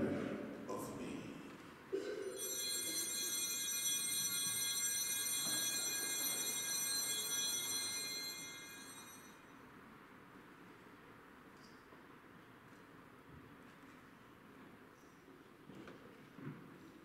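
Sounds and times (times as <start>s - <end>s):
altar bells ringing: 2.3s - 9.6s.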